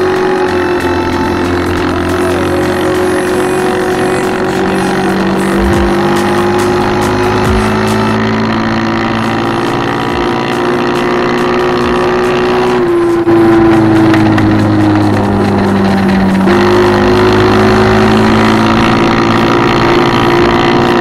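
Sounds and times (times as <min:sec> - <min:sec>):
scooter engine running: 0:00.0 - 0:21.0.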